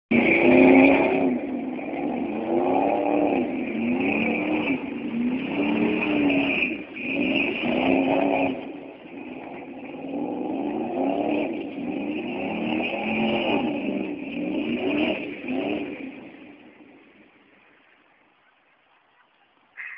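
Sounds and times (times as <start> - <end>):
truck engine revving: 0.1 - 18.0.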